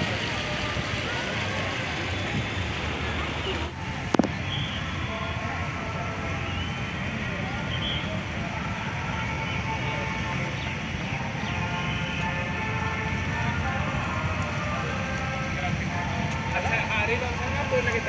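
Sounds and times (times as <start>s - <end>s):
distant people talking: 0.0s - 18.0s.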